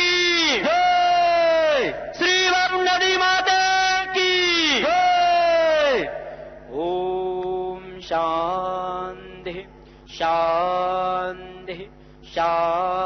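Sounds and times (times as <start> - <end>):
man chanting: 0.0 - 13.0.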